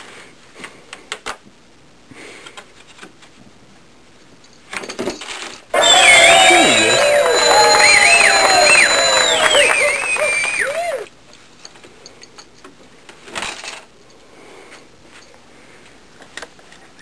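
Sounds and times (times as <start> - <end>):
sliding whistle-like tones: 5.8 - 11.1
steady high tone: 5.8 - 11.1.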